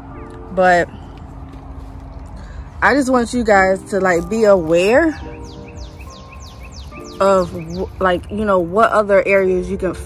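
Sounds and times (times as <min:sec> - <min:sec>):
bird calling high notes: 0:04.2 - 0:08.7.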